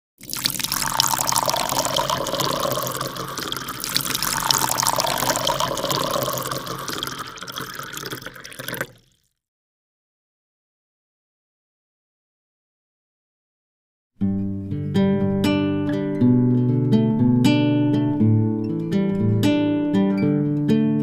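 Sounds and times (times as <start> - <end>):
water splashing: 0.2 - 9.2.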